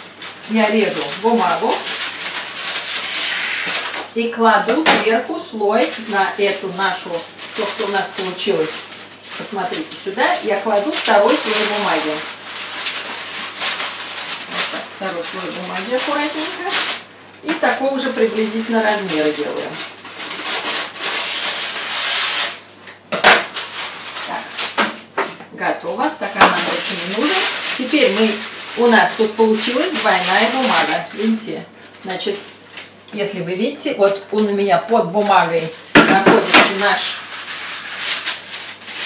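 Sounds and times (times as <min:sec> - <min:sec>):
baking paper rustling: 0:00.0 - 0:39.0.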